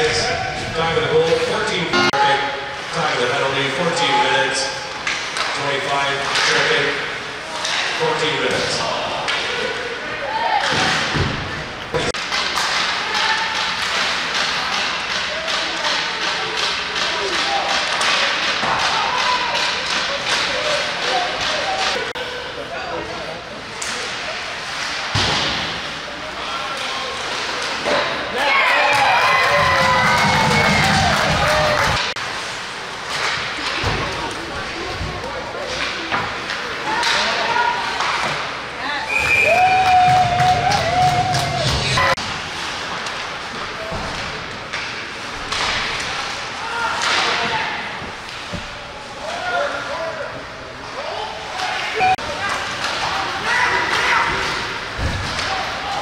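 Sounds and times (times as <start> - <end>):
rink chatter: 0.0 - 56.0
pucks and sticks thudding boards: 5.0 - 9.7, 10.5 - 22.2, 23.8 - 26.0, 29.4 - 38.6, 39.7 - 48.9, 51.6 - 56.0.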